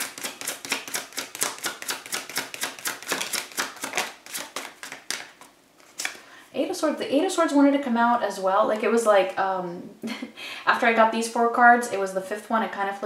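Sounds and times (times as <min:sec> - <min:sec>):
cards being shuffled: 0:00.0 - 0:06.2.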